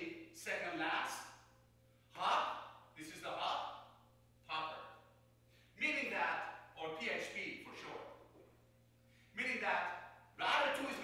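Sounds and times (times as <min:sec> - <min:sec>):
man speaking: 0:00.0 - 0:01.4, 0:02.1 - 0:05.1, 0:05.8 - 0:08.2, 0:09.4 - 0:11.0
steady low hum: 0:00.0 - 0:11.0.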